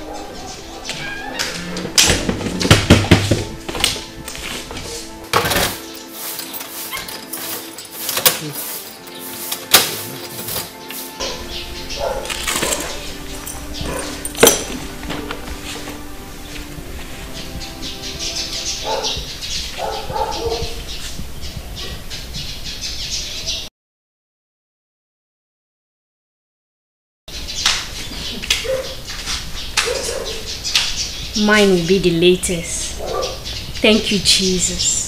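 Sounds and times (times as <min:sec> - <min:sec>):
bird squawks: 0:00.0 - 0:01.8
background music: 0:00.0 - 0:21.1, 0:29.8 - 0:35.0
birds chirping: 0:00.0 - 0:23.7, 0:27.3 - 0:35.0.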